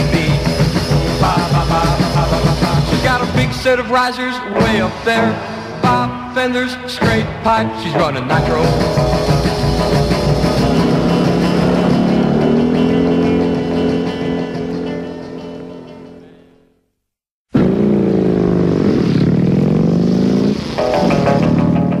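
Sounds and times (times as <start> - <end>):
motorcycle engine revving: 0.0 - 3.5, 8.4 - 16.4, 17.5 - 22.0
rock and roll song: 0.0 - 16.5, 20.8 - 22.0.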